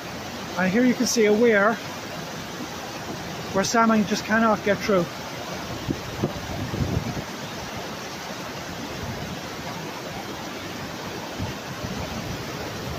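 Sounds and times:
water rushing over weir: 0.0s - 12.9s.

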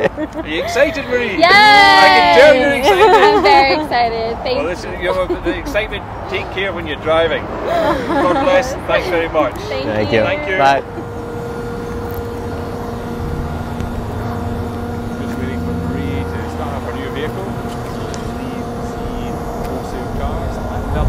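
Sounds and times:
low mechanical hum: 0.0s - 21.0s
pitched drone: 0.0s - 21.0s
faint voices: 0.4s - 21.0s.

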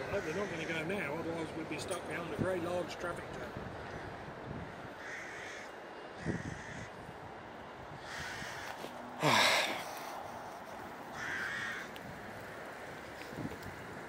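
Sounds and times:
crow cawing: 0.0s - 1.0s, 3.8s - 7.0s, 8.0s - 12.0s
background traffic noise: 0.0s - 14.0s.

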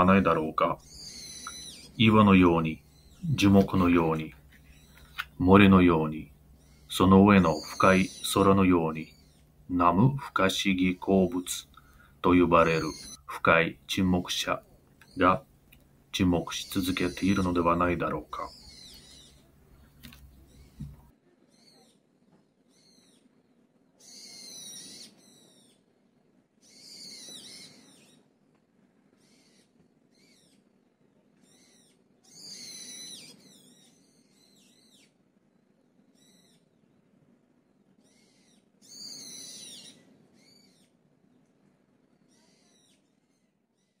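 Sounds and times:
songbird chirping: 0.0s - 25.9s, 26.6s - 28.3s, 29.2s - 37.0s, 38.0s - 44.0s
soft low background hum: 0.0s - 44.0s.

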